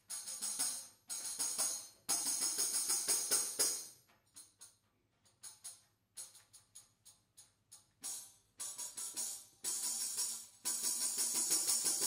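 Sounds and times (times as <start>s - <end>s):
tambourines jingling: 0.0s - 3.9s.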